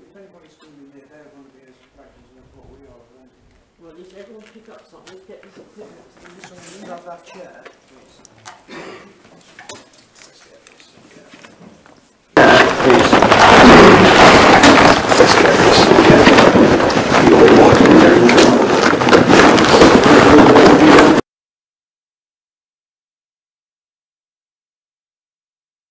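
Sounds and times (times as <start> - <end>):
loud distorted amplified recording: 0.0 - 21.2.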